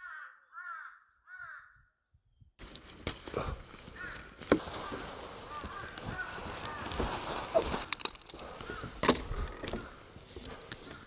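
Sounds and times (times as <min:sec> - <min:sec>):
crow cawing: 0:00.0 - 0:01.8, 0:03.2 - 0:11.0.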